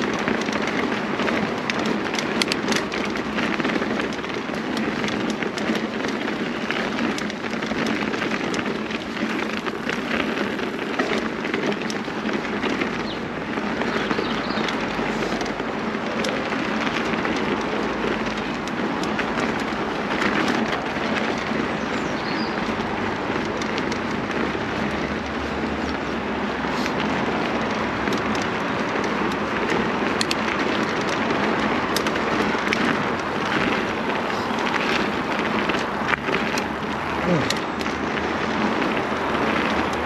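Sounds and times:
bike tyres rolling on gravel: 0.0 - 40.0.

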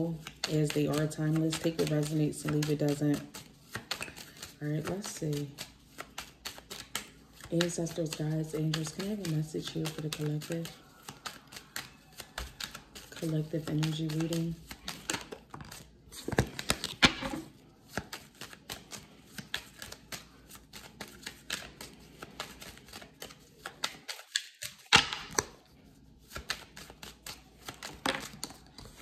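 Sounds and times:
cards being shuffled: 0.1 - 29.0.

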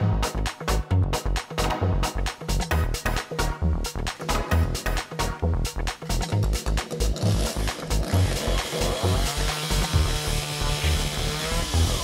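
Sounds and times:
electronic music with beat: 0.0 - 12.0
chainsaw cutting wood: 6.6 - 12.0.

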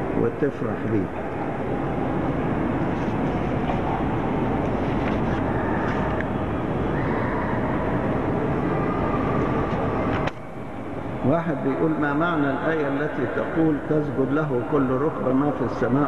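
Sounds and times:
dense crowd noise: 0.0 - 16.0.

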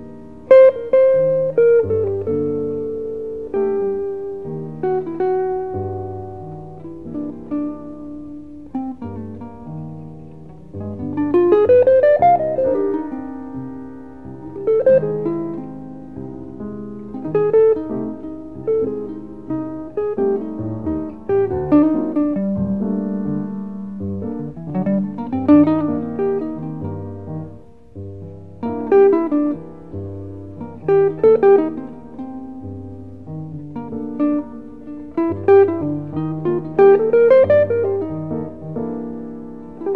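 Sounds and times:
jazz guitar runs: 0.0 - 39.9
piano held low notes: 0.0 - 39.9.

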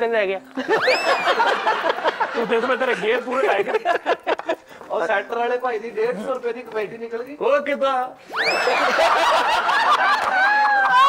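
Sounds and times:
men laughing loudly: 0.6 - 4.9, 8.4 - 11.0
high rising cry: 8.3 - 9.0.

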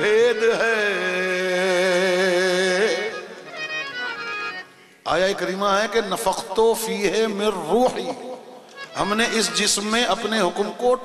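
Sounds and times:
harmonium: 0.0 - 11.0.

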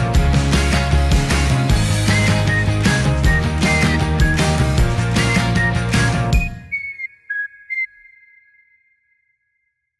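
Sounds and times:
high whistled notes: 1.9 - 9.7.

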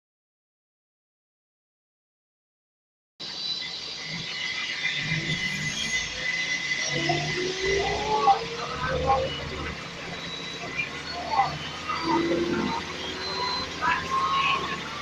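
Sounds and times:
bus engine with high whine: 3.2 - 15.0
passengers' voices: 6.9 - 15.0.

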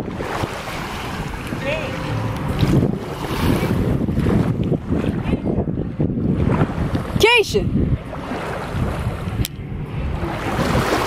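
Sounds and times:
small waves lapping on shore: 0.0 - 11.0
wind buffeting microphone: 0.0 - 11.0.

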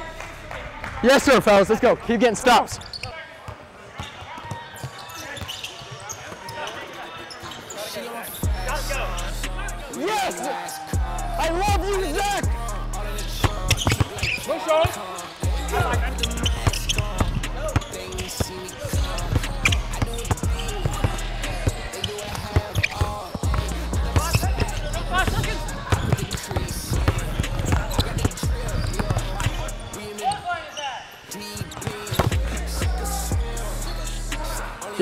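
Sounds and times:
music with deep bass line: 8.4 - 9.9, 11.0 - 13.8, 15.4 - 17.7, 19.0 - 21.8, 23.5 - 25.8, 26.9 - 29.9, 32.3 - 34.8.

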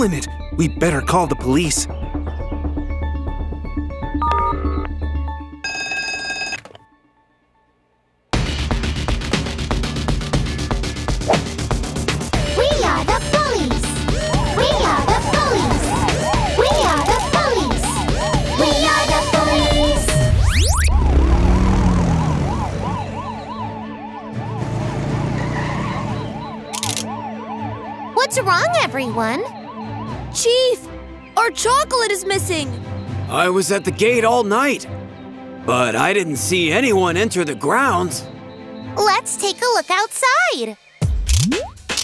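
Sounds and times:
background music: 0.0 - 42.0
telephone ringing: 4.2 - 5.0, 5.6 - 6.9
cartoon police siren wail: 14.2 - 30.7.

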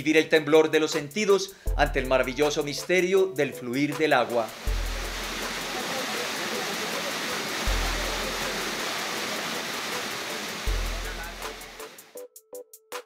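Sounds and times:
waterfall rushing: 4.5 - 12.1
deep bass note in music: 7.7 - 8.4.

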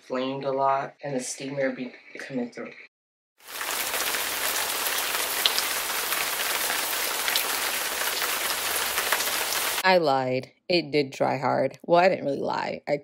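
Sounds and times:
shower running: 3.4 - 9.8.

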